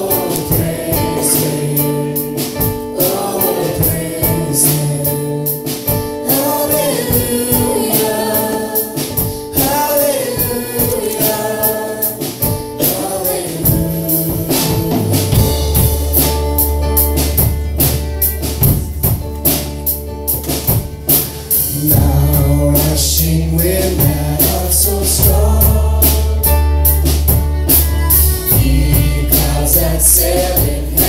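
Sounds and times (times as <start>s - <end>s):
person singing: 0.0s - 17.4s, 21.7s - 31.0s
acoustic guitar: 0.0s - 31.0s
percussion beat: 0.0s - 31.0s
violin: 26.6s - 30.2s.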